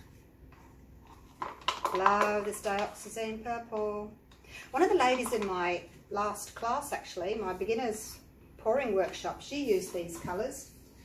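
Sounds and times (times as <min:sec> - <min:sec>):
plastic cups clicking: 0:01.1 - 0:03.1.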